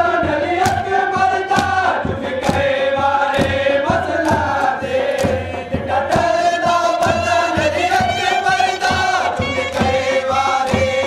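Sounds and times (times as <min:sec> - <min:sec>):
chorus chanting: 0:00.0 - 0:11.0
man singing a lament: 0:00.0 - 0:11.0.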